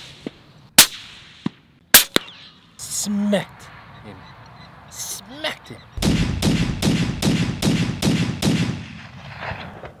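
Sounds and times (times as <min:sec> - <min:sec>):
gunshot-like bangs: 0:06.0 - 0:09.9.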